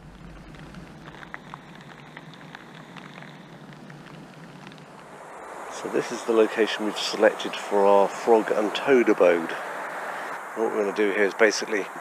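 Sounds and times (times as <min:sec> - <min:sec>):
low hum: 0:00.0 - 0:10.6
steady hiss: 0:00.0 - 0:12.0.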